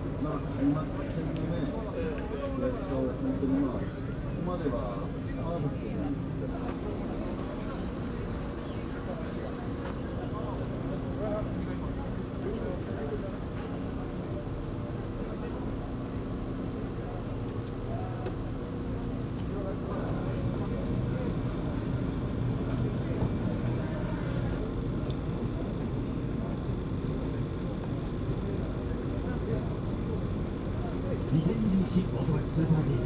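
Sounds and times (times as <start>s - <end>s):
faint hum: 0.0s - 33.0s.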